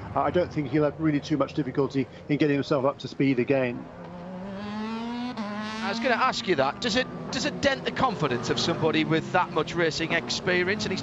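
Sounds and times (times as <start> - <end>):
race car engine accelerating: 3.8 - 11.0.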